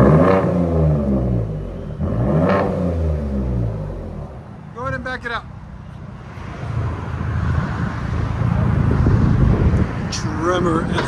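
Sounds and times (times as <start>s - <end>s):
truck exhaust rumbling: 0.0s - 11.0s.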